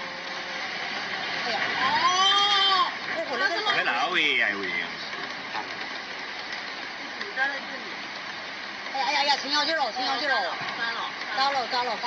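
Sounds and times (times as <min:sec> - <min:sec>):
floodwater rushing: 0:00.0 - 0:12.0.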